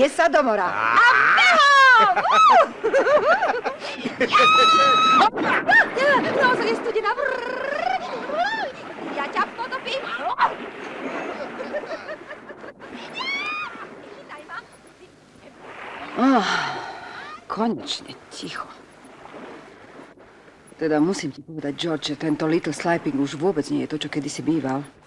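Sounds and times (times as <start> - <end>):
people shrieking and laughing: 0.8 - 6.6, 11.2 - 13.9
high held scream: 4.3 - 5.3, 13.1 - 13.8.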